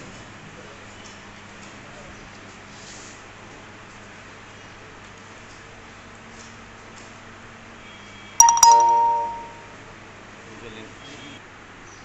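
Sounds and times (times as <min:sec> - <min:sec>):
bell-like chime: 0:08.4 - 0:09.8.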